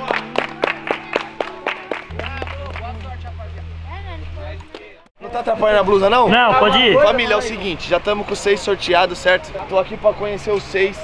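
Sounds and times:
crowd clapping in rhythm: 0:00.0 - 0:03.6
background music with bass: 0:00.0 - 0:05.0
voices: 0:02.2 - 0:11.0.

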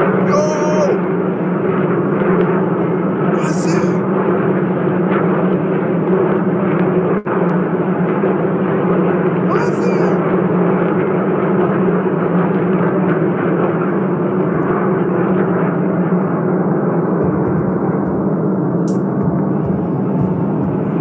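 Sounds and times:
loud steady rumbling din: 0:00.0 - 0:21.0.

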